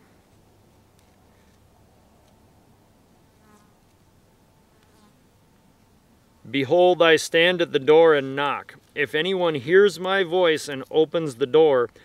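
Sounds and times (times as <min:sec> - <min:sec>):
flying insect buzzing: 0:03.3 - 0:04.0, 0:04.6 - 0:05.3.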